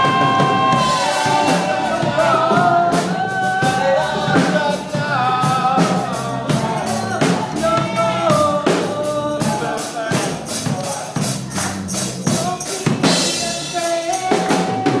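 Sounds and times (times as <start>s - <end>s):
band playing upbeat song: 0.0s - 15.0s
drum kit steady beat: 0.0s - 15.0s.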